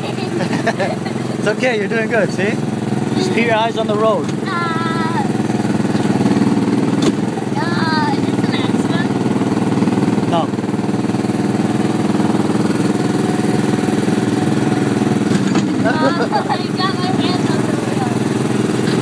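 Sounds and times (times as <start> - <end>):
go-kart engine running: 0.0 - 19.0.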